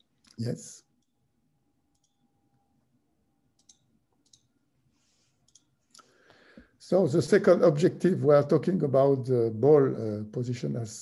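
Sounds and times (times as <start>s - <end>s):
faint mouse clicks: 1.9s - 2.2s, 3.6s - 4.5s, 5.4s - 6.8s.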